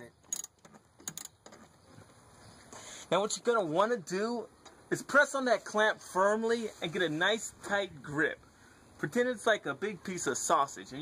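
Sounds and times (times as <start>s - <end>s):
faint background hiss: 0.0s - 11.0s
small metallic clicks: 0.2s - 1.8s.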